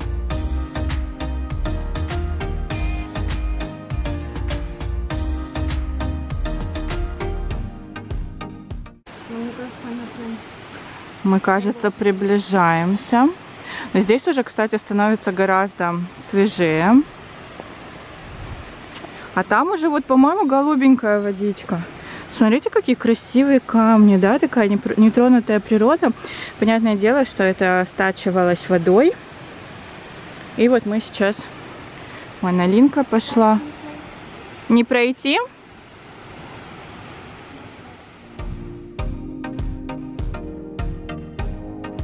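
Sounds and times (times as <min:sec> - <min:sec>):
music with thudding beat: 0:08.0 - 0:09.0, 0:38.4 - 0:42.0
outdoor background noise: 0:09.0 - 0:40.5
stream water flowing: 0:09.1 - 0:38.9.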